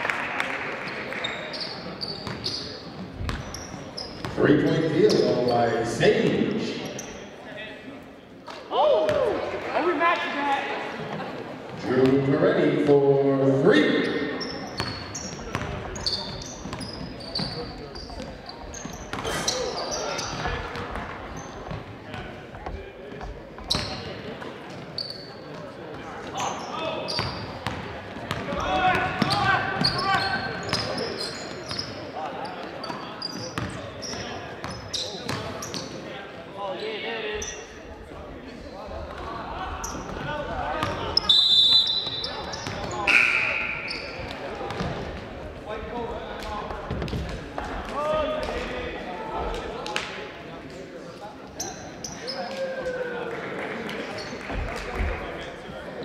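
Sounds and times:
voices in a gym: 0.0 - 56.0
shoe squeaks: 1.2 - 4.4, 5.0 - 5.8, 6.8 - 7.3, 14.0 - 20.5, 23.6 - 24.1, 24.9 - 25.6, 26.3 - 27.6, 29.2 - 36.0, 40.8 - 44.8, 51.6 - 52.5
basketball bouncing on wooden floor: 3.2 - 3.5
referee whistle: 41.2 - 42.4, 43.0 - 44.2.

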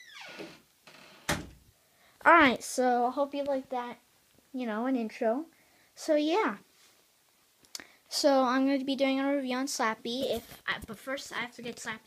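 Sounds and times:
door creaking: 0.0 - 1.6.

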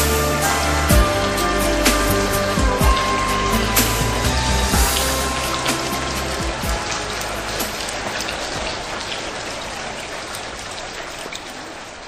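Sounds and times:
low music notes: 0.0 - 9.4
rain hiss with drop clicks: 0.0 - 12.0.

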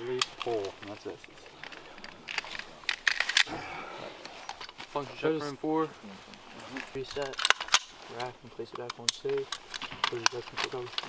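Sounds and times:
firearm metallic clicks: 8.7 - 11.0.

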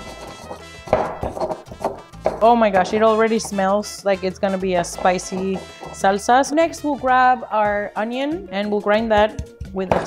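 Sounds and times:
stone pestle grinding and knocking: 0.0 - 3.8, 4.4 - 6.5
background music: 0.0 - 10.0.

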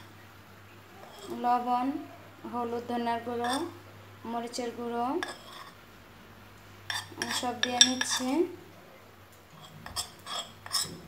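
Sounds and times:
spoon scraping ceramic bowl: 1.0 - 1.4, 3.3 - 3.8, 5.2 - 5.8, 6.9 - 8.4, 9.5 - 11.0.

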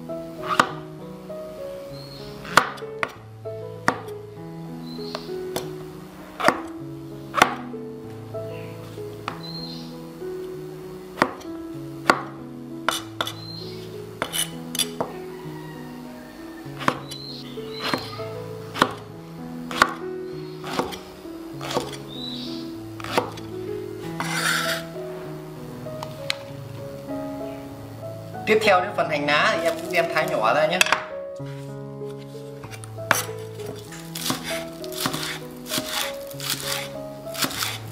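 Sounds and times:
background music: 0.0 - 37.9
knife chopping on wooden board: 2.5 - 3.2, 3.8 - 4.1, 6.4 - 6.7, 7.4 - 7.6, 11.2 - 12.3, 12.9 - 13.4, 14.2 - 15.1, 16.8 - 17.2, 17.8 - 18.2, 18.8 - 19.0, 19.7 - 20.0, 20.6 - 21.0, 21.6 - 22.0, 23.0 - 23.4, 32.6 - 37.8.

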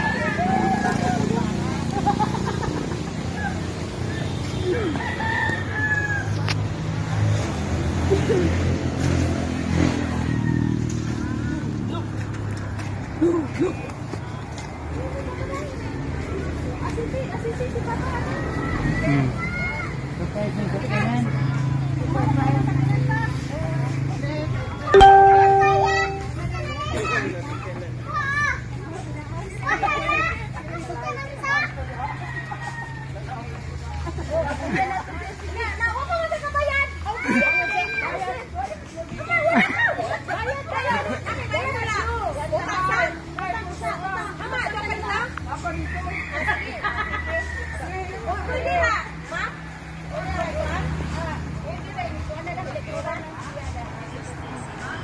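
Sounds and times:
rooster crowing: 4.8 - 6.4
people talking excitedly: 26.1 - 55.0.

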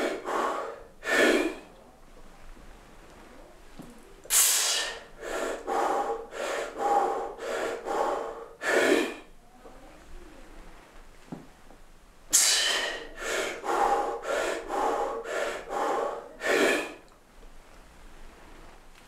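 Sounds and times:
loud gasping breath: 0.0 - 1.7, 4.3 - 9.3, 12.3 - 17.1
man breathing hard: 0.0 - 1.7, 4.3 - 9.3, 12.3 - 17.1.

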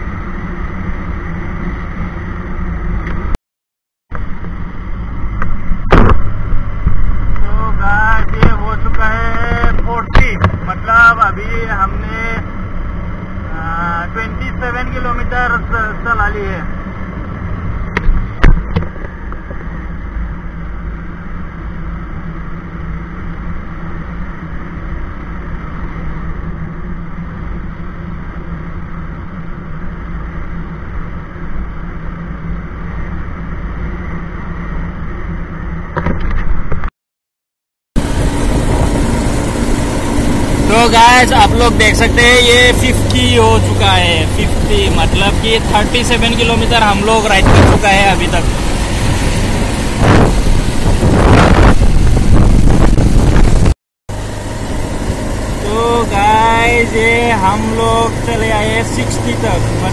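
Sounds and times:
wind rushing over microphone: 4.1 - 11.0, 38.0 - 59.9
motorcycle engine running: 38.0 - 59.9
person speaking: 40.6 - 48.6, 55.6 - 59.9.

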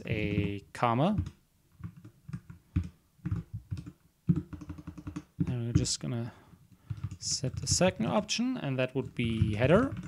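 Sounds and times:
computer keyboard typing: 1.2 - 5.9, 6.8 - 8.2, 9.1 - 10.0.

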